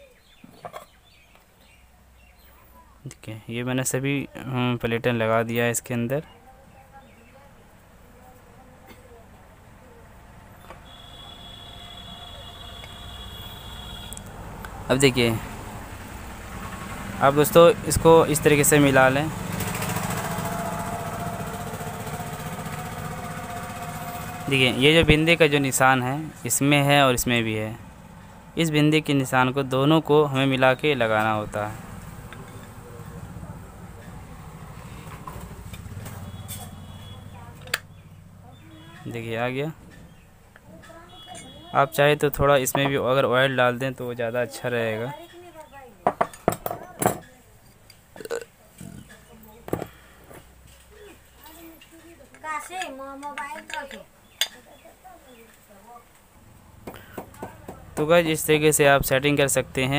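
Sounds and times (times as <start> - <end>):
small engine running: 15.4 - 26.6, 31.0 - 38.8.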